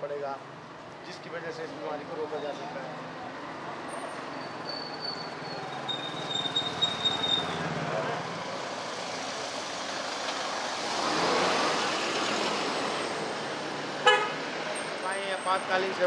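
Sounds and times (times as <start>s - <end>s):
street traffic: 0.0s - 16.0s.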